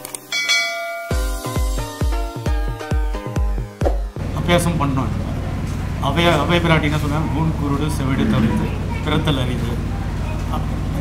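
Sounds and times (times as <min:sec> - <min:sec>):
bell chime sound effect: 0:00.3 - 0:01.7
music with heavy deep beat: 0:01.1 - 0:04.2.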